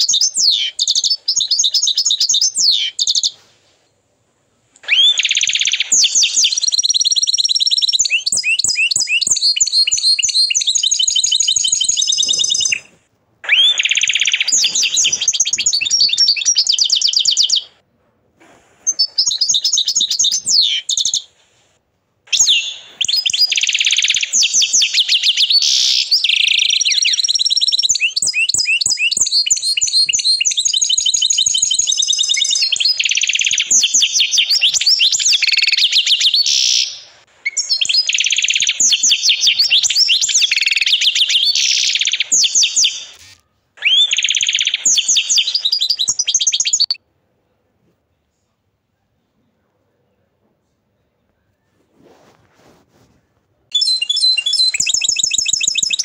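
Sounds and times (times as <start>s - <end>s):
canary singing trills: 0.0s - 3.5s, 4.8s - 17.8s, 18.9s - 21.4s, 22.3s - 47.0s, 53.7s - 56.0s.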